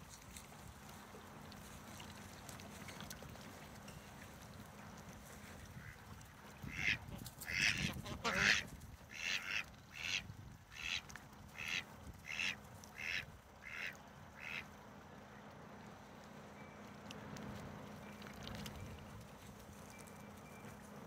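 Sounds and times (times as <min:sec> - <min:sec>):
ducks quacking: 0:05.8 - 0:14.7.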